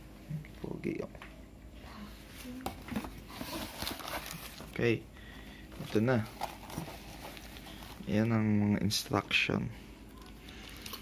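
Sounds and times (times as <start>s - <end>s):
hand rummaging in a box: 3.0s - 4.8s, 5.8s - 8.3s.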